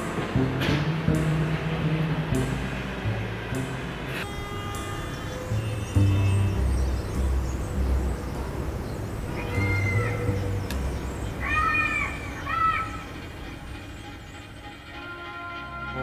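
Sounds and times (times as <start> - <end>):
music with held notes: 0.0 - 16.0.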